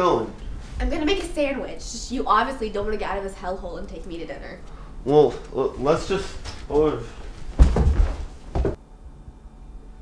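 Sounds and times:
person collapsing onto carpeted floor: 7.4 - 8.8
short thump: 7.6 - 8.8.

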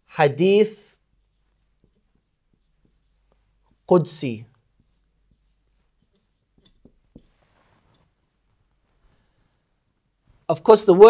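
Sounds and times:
marker writing on whiteboard: 0.0 - 9.1.

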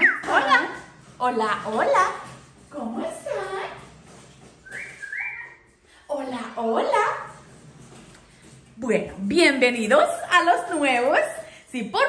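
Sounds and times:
parrot whistling: 0.0 - 0.5, 4.6 - 5.7.

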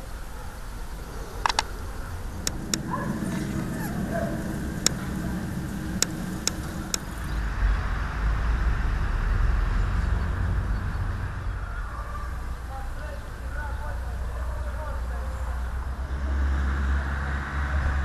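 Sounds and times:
motor vehicle rumble: 0.0 - 18.0
sharp clicks: 1.4 - 1.8, 2.4 - 3.6, 4.8 - 7.3.

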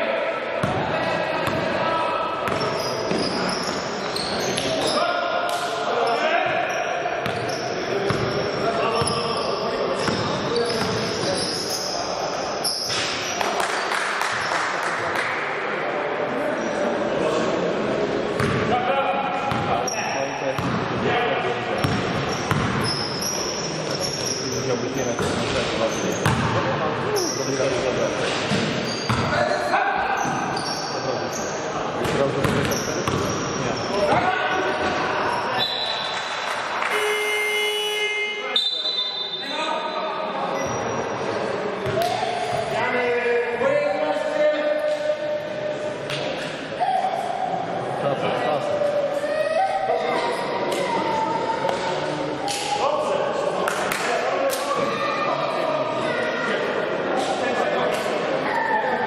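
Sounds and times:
basketball bouncing on court: 0.6 - 1.6, 2.4 - 3.4, 7.2 - 8.4, 18.4 - 18.6, 19.5 - 19.7, 20.6 - 20.9, 21.8 - 22.9, 26.2 - 26.6, 28.5 - 29.4, 32.0 - 33.4
sneakers squeaking: 0.6 - 5.2, 6.0 - 14.6, 18.3 - 18.7, 19.4 - 21.0, 21.7 - 42.9
players calling out: 32.7 - 41.2.

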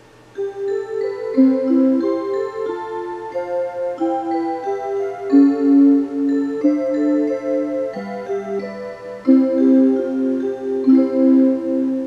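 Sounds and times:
wall clock electronic melody: 0.0 - 12.0.

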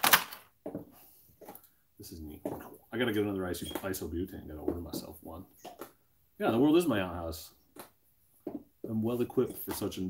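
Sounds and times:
packaging rustling: 0.0 - 0.5.

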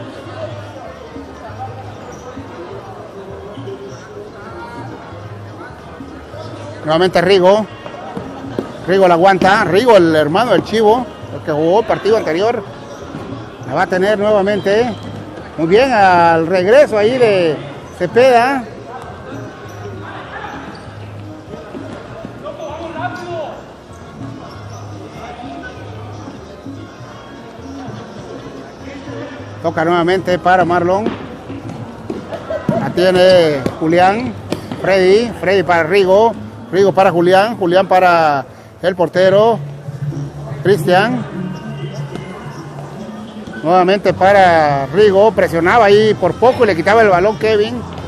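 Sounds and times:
voices echoing in hall: 0.0 - 48.0.

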